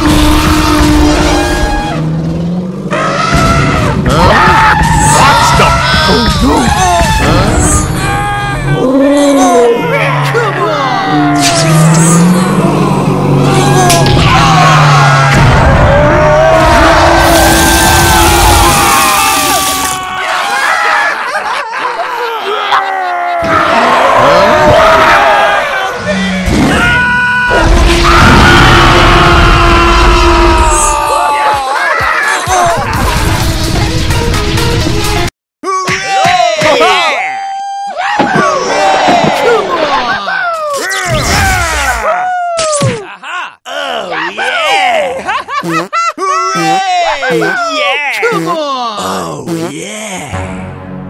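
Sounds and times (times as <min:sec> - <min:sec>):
people yelling and screaming: 0:02.9 - 0:33.9, 0:35.6 - 0:45.5, 0:46.1 - 0:49.0
cartoon voice groaning: 0:04.1 - 0:14.9, 0:39.7 - 0:50.4
loud rumbling crash: 0:13.3 - 0:18.9
music: 0:31.4 - 0:35.3, 0:50.3 - 0:51.0.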